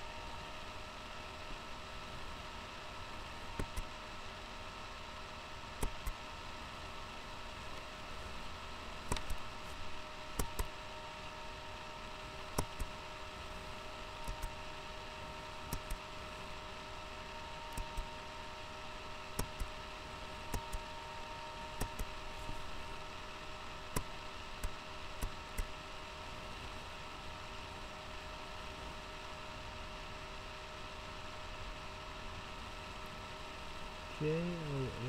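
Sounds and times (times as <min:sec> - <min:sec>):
steady hiss: 0:00.0 - 0:27.9
faint electrical hum: 0:00.0 - 0:35.0.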